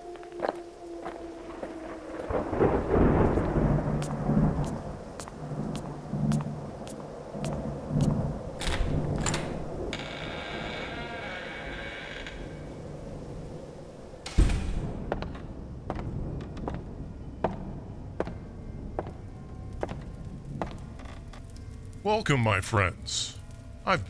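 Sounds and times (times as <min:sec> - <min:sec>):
rain: 0:00.0 - 0:24.0
thunder rumbling: 0:01.0 - 0:21.2.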